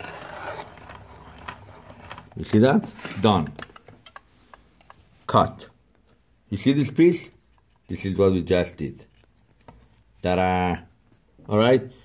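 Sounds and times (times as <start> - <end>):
hand crank cutter cutting fabric: 0.0 - 2.4.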